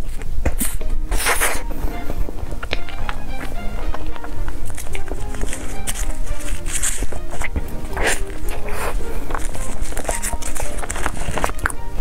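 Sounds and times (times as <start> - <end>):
biting into soft pastry: 0.0 - 12.0
faint background music: 0.0 - 12.0
wet chewing and lip smacks: 2.6 - 12.0.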